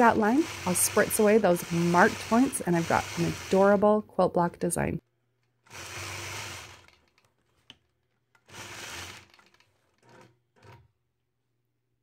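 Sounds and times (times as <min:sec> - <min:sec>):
quilting machine stitching: 0:00.0 - 0:03.8, 0:05.3 - 0:10.9.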